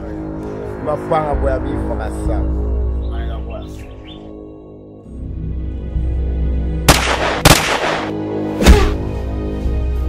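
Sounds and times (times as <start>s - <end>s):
low droning film score: 0.0s - 10.0s.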